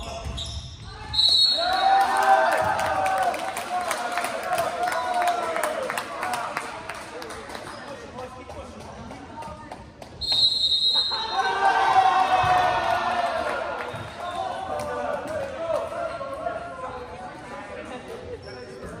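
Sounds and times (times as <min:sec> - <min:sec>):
referee's whistle: 0:00.3 - 0:01.9, 0:10.2 - 0:11.5
crowd shouting and cheering: 0:00.8 - 0:06.8, 0:11.0 - 0:16.8.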